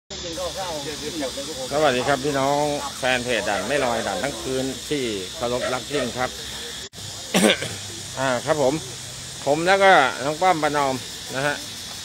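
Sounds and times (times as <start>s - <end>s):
steady hiss: 0.1s - 12.0s.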